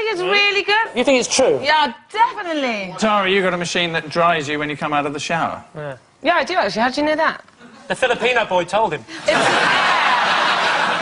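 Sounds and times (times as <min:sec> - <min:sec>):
studio audience laughing: 0:09.1 - 0:11.0.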